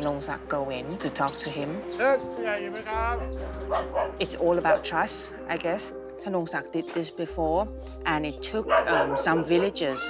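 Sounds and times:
soft background music: 0.0 - 10.0
dog barking: 3.6 - 4.9, 8.6 - 10.0.

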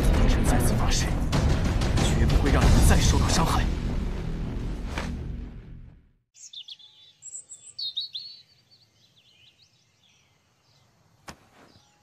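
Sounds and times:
music: 0.0 - 6.2
songbirds chirping: 6.3 - 12.0.

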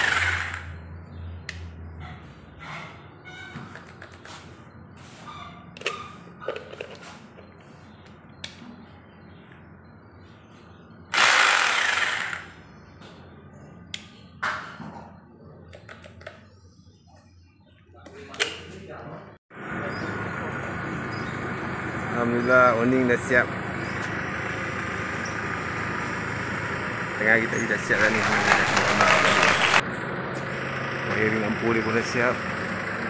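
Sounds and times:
hammer drill bursts: 0.0 - 0.8, 11.1 - 12.6, 28.0 - 29.8.

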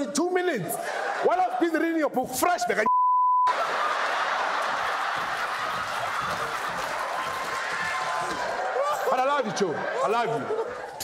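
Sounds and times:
high-pitched censor bleep: 2.9 - 3.5
audience laughter: 3.5 - 7.1, 8.6 - 11.0.

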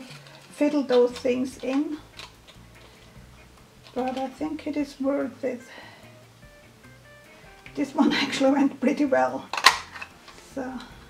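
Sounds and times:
small plastic ticks and handling: 0.0 - 3.1
low faint hum: 0.0 - 11.0.

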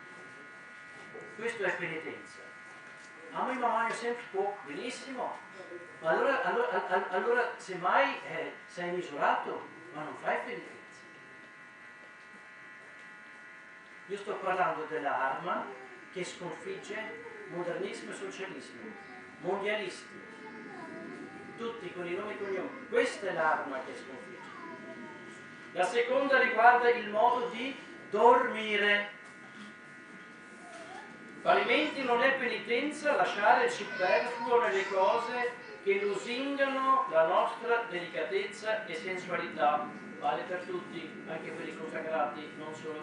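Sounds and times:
faint electrical buzz: 0.0 - 43.0
faint voice: 18.6 - 25.7.

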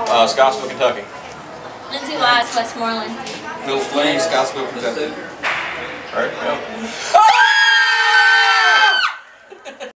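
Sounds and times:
people screaming together: 7.0 - 9.3.

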